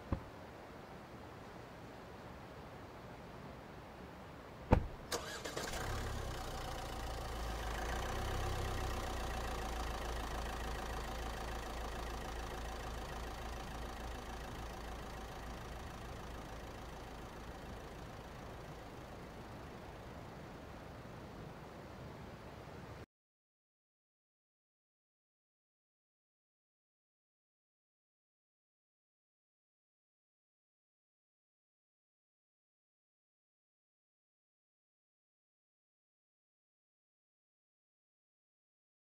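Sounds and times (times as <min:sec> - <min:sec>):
sharp knock: 0:04.7 - 0:05.0
car engine starting and running: 0:04.7 - 0:20.6.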